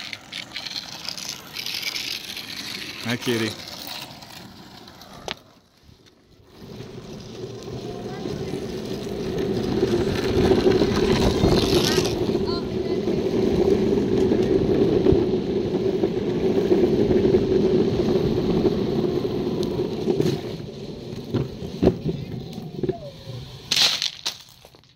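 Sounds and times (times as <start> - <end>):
longboard wheels rolling on asphalt: 0.0 - 24.9.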